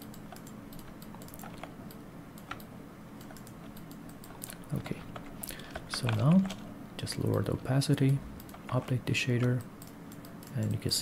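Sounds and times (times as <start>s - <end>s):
keyboard and mouse clicks: 0.0s - 10.8s
faint low hum: 0.0s - 11.0s.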